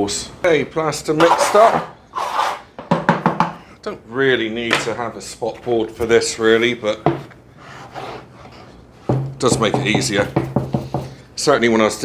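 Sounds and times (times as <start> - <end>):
bucket knock: 9.1 - 11.1.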